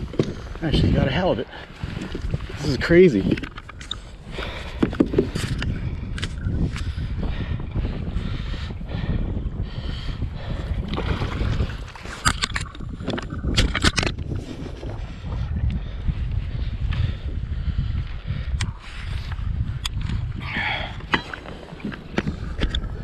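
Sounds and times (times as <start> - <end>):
water sloshing against kayak hull: 0.0 - 7.2, 10.4 - 17.2, 18.7 - 23.0
wind buffeting microphone: 0.0 - 23.0.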